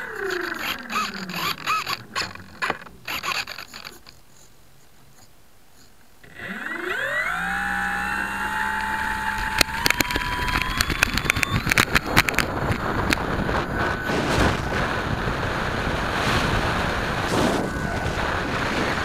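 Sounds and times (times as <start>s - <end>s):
electric motor whine: 0.0s - 4.1s, 6.2s - 19.0s
sharp clicks and rattles: 0.0s - 4.2s, 6.2s - 19.0s
wind rushing over camera: 6.6s - 19.0s.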